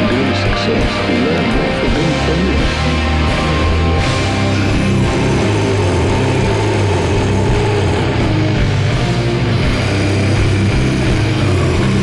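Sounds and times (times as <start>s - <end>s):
doom metal band playing: 0.0s - 12.0s.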